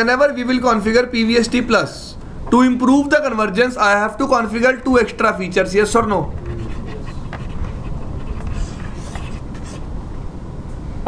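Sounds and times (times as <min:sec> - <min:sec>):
low background room rumble: 0:00.0 - 0:11.0.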